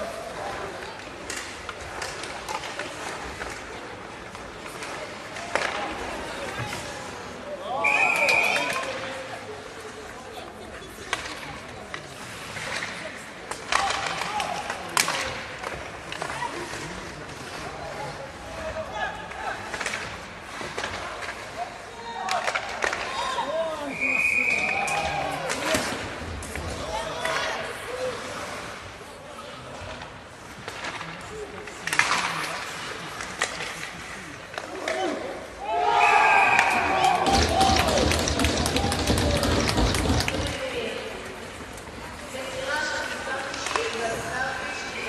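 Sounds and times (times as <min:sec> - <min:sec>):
sticks and puck clacking: 0:00.1 - 0:07.4, 0:08.2 - 0:23.6, 0:24.4 - 0:29.0, 0:29.7 - 0:35.6, 0:36.5 - 0:45.0
referee whistle blasts: 0:07.8 - 0:08.7, 0:23.9 - 0:25.1
puck knocking against boards: 0:37.2 - 0:40.6.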